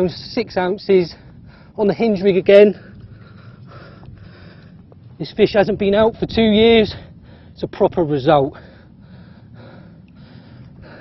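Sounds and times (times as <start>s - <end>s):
low steady rumble: 0.0s - 11.0s
man breathing: 1.1s - 1.8s, 2.7s - 5.2s, 6.9s - 7.6s, 8.5s - 11.0s
man speaking: 5.2s - 7.0s.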